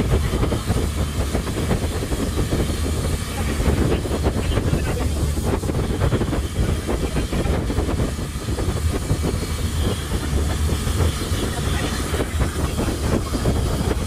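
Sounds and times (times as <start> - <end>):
boat engine droning: 0.0 - 14.0
wind: 0.0 - 14.0.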